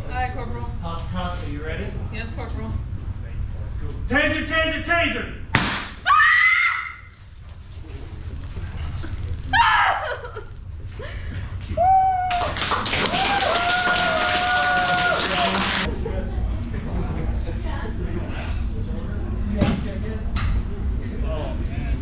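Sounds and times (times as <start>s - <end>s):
woman crying out and groaning: 9.5s - 10.5s.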